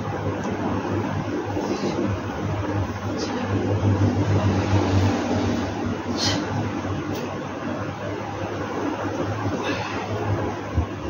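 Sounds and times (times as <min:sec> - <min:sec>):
low mechanical hum: 0:00.0 - 0:11.0
noisy background: 0:00.0 - 0:11.0.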